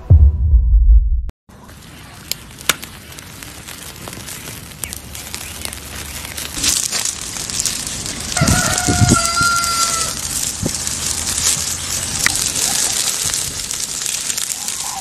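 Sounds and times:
wood fire crackling and popping: 1.6s - 15.0s
rooster crowing: 8.3s - 10.4s.

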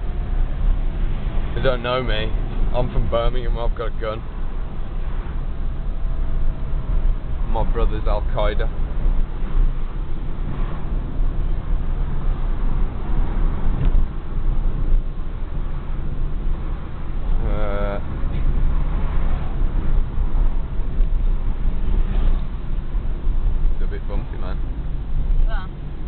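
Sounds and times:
car engine and tyre rumble: 0.0s - 26.0s.

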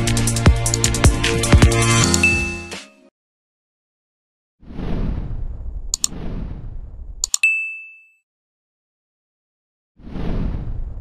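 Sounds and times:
mouse clicks: 2.0s - 2.3s, 6.0s - 6.2s, 7.2s - 7.5s
notification bell ding: 2.0s - 2.7s, 7.3s - 8.2s.

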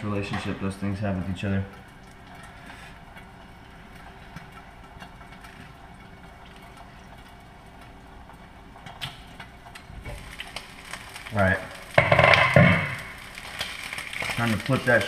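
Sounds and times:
steak frying in a skillet: 9.5s - 15.0s.

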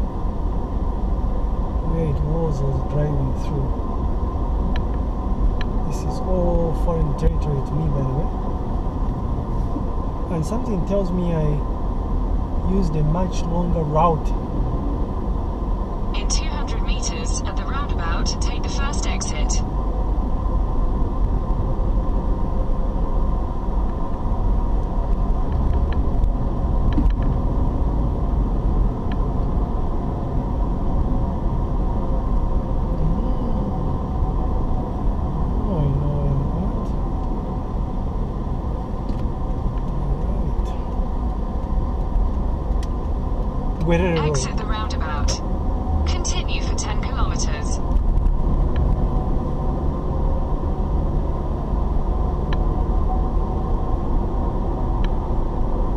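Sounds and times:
car engine and road noise: 0.0s - 55.9s.

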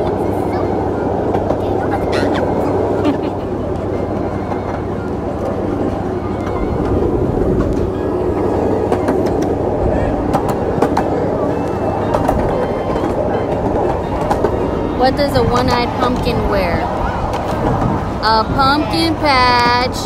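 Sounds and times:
miniature train rumbling on track: 0.0s - 20.0s.

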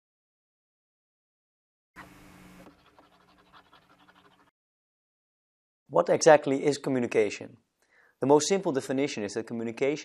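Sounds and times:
marker scratching on paper: 2.0s - 4.5s.

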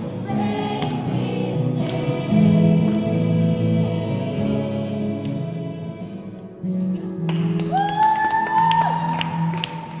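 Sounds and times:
hand claps: 0.8s - 2.2s, 7.2s - 10.0s.

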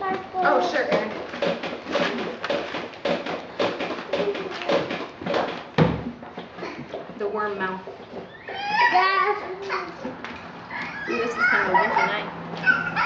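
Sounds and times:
loud knock: 0.9s - 6.2s.

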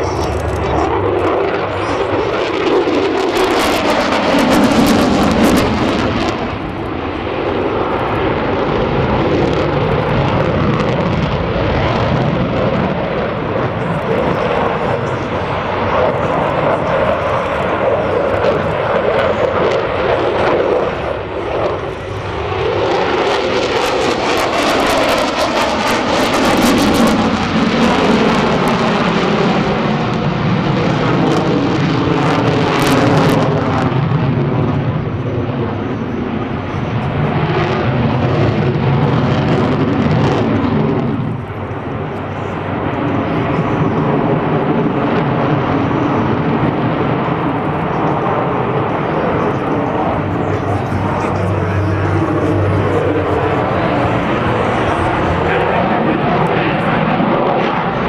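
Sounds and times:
jet engines roaring overhead: 0.0s - 58.0s.

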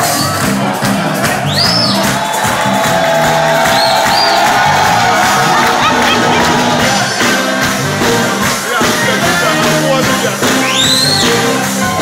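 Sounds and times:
crowd cheering: 0.0s - 12.0s
live band playing: 0.0s - 12.0s.

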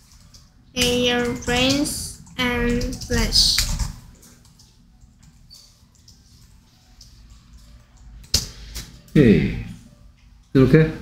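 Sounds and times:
child speaking: 0.8s - 3.8s.

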